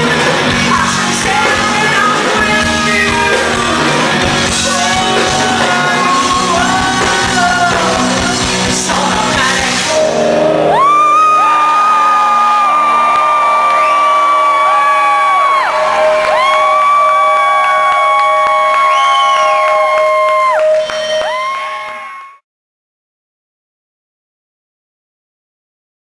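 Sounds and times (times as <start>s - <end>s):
amplifier feedback howling: 9.9s - 22.4s
crowd shouting: 10.4s - 22.4s.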